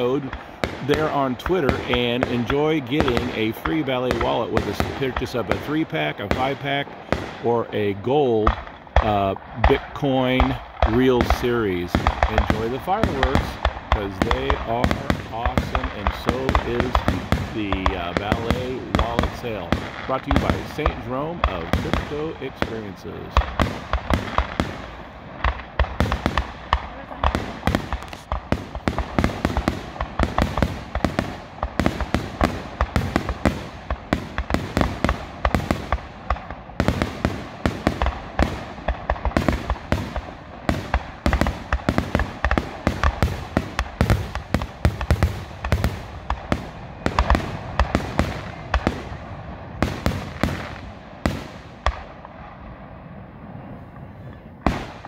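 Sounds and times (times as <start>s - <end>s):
fireworks bursting and crackling: 0.0s - 55.0s.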